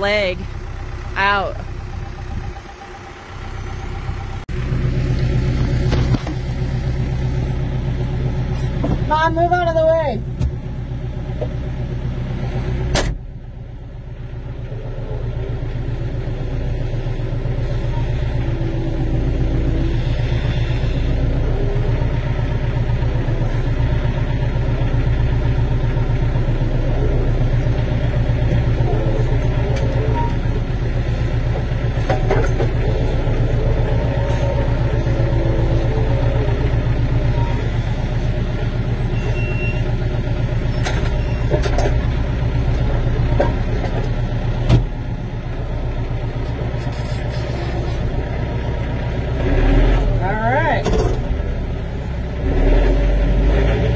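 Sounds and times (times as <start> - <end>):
tractor engine running: 0.0 - 53.9.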